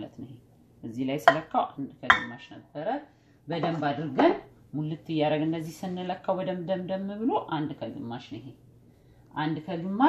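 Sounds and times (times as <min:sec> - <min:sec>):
measuring cup clinking on glass bowl: 0:01.3 - 0:01.5, 0:02.1 - 0:02.4.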